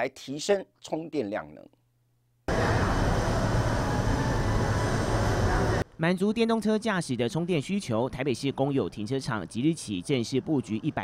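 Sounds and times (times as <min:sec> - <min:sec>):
rumbling parking garage noise: 0:02.5 - 0:05.8
low hum: 0:02.5 - 0:05.9.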